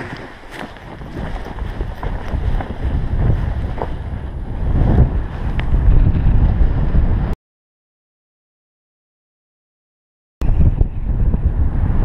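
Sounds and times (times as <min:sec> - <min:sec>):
wind buffeting microphone: 0:00.0 - 0:07.4, 0:10.4 - 0:12.0.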